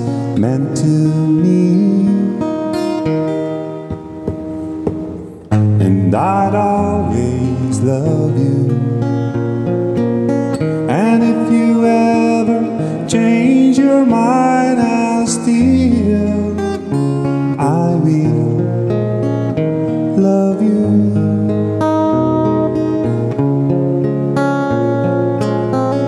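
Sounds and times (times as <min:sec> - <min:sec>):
acoustic guitar ballad: 0:00.0 - 0:26.0.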